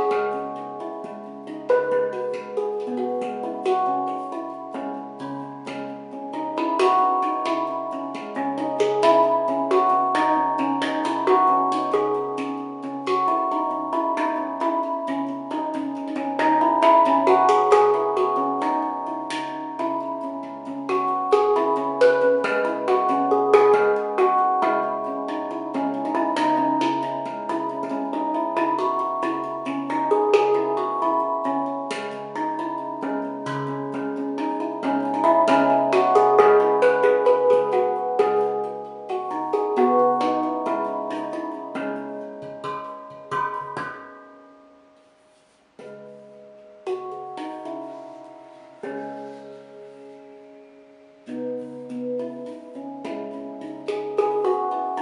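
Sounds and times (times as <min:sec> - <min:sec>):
handpan notes ringing: 0:00.0 - 0:55.0.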